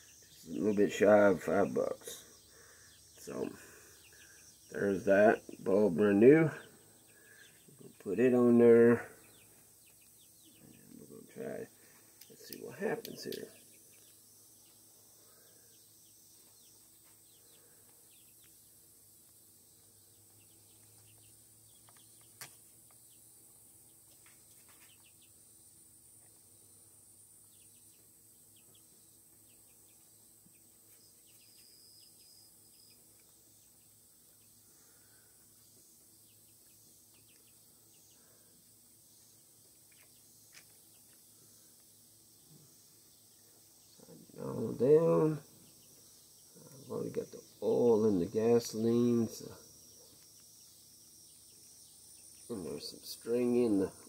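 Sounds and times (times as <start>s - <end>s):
faint outdoor hiss: 0.0s - 54.0s.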